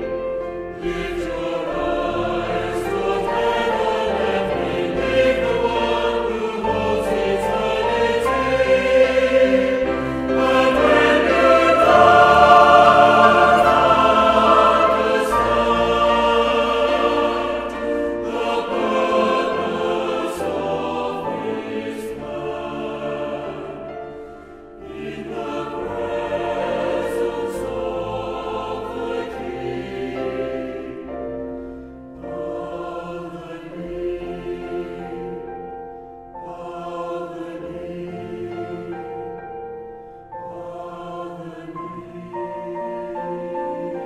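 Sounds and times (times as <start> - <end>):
choir singing worship song: 0.0 - 44.0.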